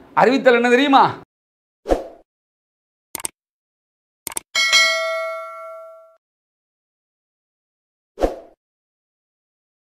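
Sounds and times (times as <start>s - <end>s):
quick clicks: 3.2s - 3.4s, 4.3s - 4.5s
notification bell ding: 4.6s - 6.2s.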